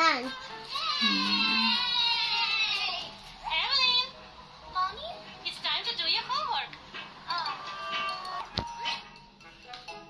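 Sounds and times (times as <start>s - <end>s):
high-pitched voice squealing: 1.0s - 1.9s.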